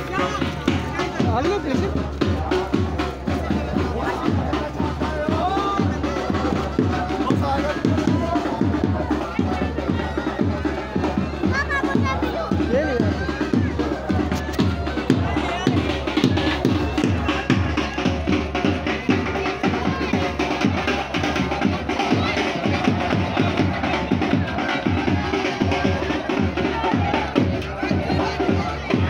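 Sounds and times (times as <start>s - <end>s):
children shouting: 0.0s - 1.4s, 2.4s - 29.0s
drums beating fast rhythm: 0.0s - 29.0s.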